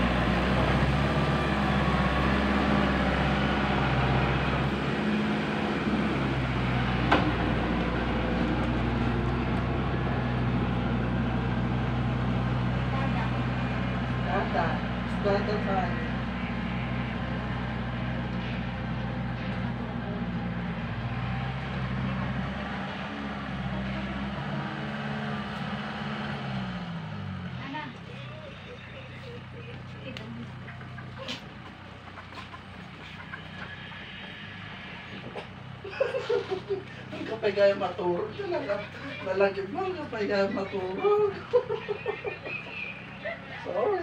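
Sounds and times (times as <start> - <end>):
motor engine running: 0.0 - 44.0.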